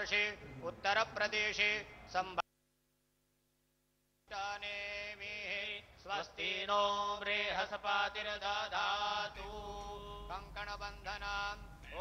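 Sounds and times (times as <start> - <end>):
man chanting mantras: 0.0 - 2.4.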